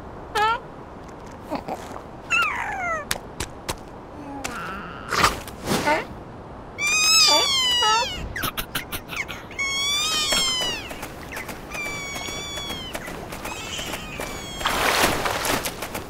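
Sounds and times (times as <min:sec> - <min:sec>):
squeaky cartoon seal calls: 0:06.8 - 0:11.0, 0:11.7 - 0:14.8.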